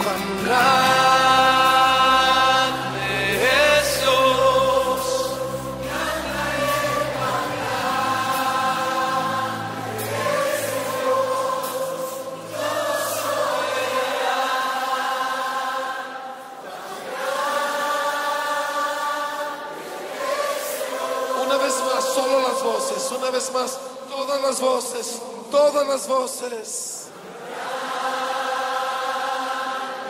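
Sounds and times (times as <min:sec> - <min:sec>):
group of voices singing held notes: 0:00.0 - 0:23.6, 0:27.1 - 0:30.0.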